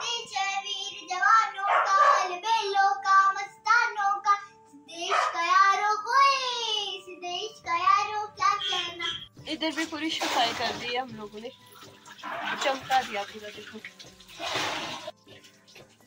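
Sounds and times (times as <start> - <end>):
girl singing: 0.0 - 9.3.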